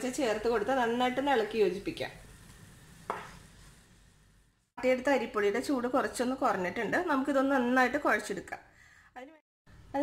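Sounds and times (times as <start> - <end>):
woman speaking: 4.8 - 10.0.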